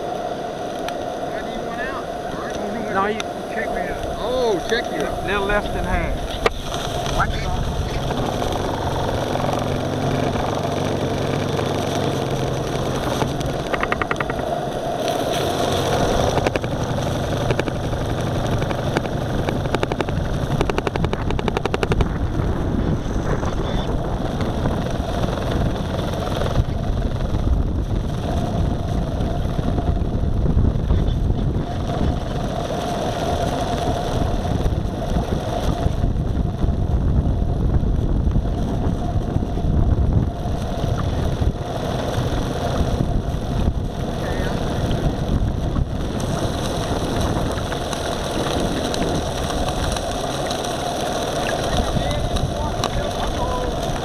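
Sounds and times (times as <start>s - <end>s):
water washing along hull: 0.0s - 54.0s.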